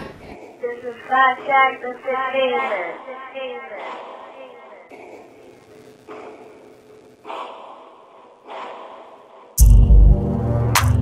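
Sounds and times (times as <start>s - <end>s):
breathy echoing voice: 0.0s - 8.2s.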